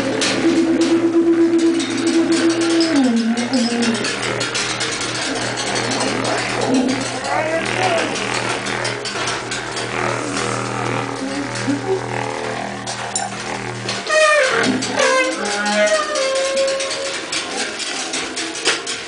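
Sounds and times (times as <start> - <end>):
low horn drone: 0.0 - 17.6
sliding horn tones: 0.0 - 19.0
breathy horn noise: 14.0 - 17.0.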